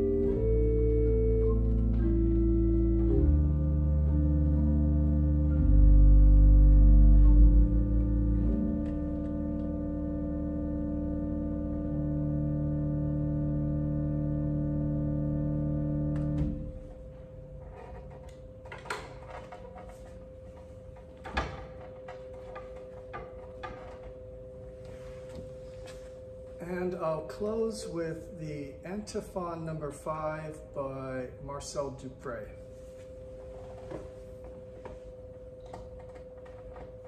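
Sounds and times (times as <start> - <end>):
organ chords with pedal bass: 0.0 - 17.0
soft knocks and rustles: 17.7 - 26.3, 32.8 - 37.0.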